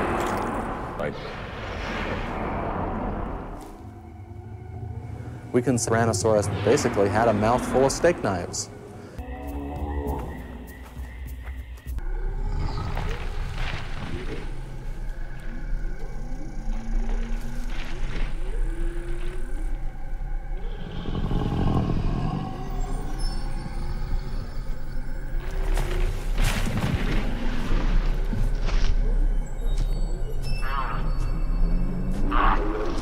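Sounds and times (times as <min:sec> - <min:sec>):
low steady drone: 0:00.0 - 0:33.0
documentary music: 0:03.5 - 0:16.1.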